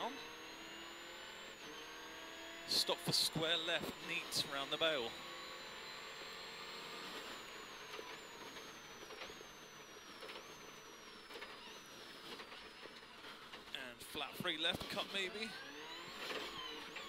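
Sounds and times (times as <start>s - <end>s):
high engine whine: 0.0s - 17.0s.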